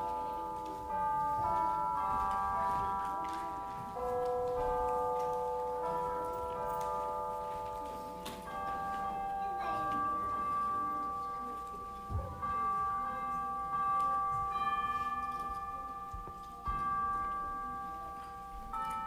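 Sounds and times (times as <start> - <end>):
tubular bell chimes melody: 0.0 - 19.0.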